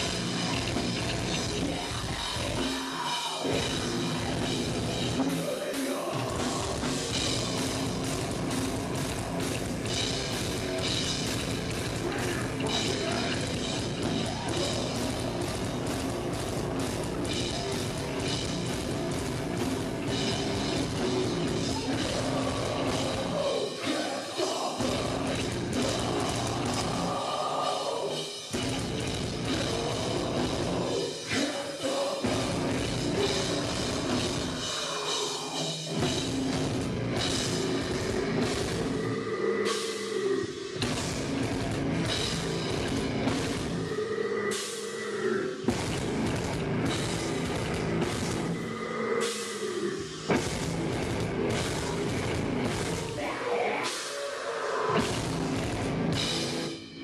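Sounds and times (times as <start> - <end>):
heavy metal band playing live: 0.0 - 57.0.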